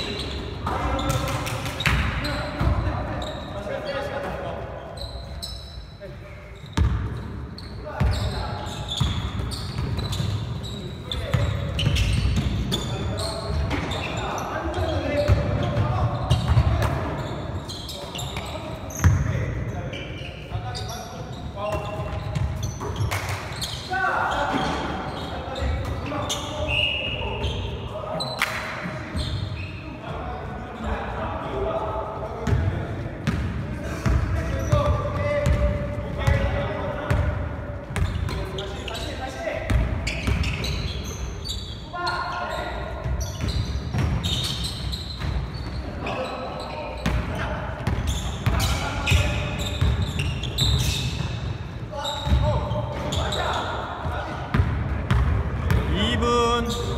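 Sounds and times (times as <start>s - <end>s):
players calling and shouting: 0.0s - 56.9s
basketball bouncing: 6.8s - 7.1s.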